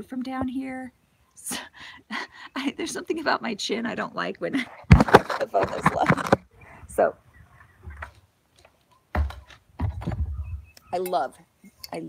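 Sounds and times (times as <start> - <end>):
low rumbling and small knocks: 9.1 - 10.7.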